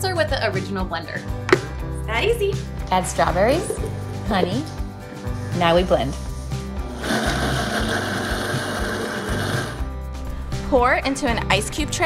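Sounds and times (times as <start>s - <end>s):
blender motor running: 6.8s - 9.9s.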